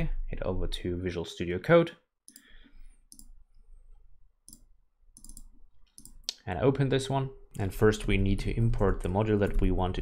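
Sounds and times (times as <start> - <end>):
keyboard and mouse clicks: 3.1 - 3.4, 4.4 - 6.4.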